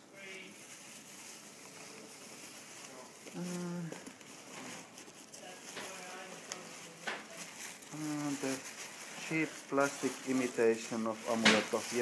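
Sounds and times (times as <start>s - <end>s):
bubble wrap crinkling: 0.0s - 12.0s
person humming: 3.3s - 4.1s.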